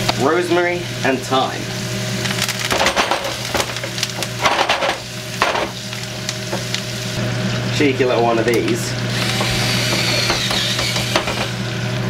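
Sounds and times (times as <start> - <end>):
potatoes frying in oil: 0.0 - 12.0
hot fat crackling and spitting: 2.1 - 7.8.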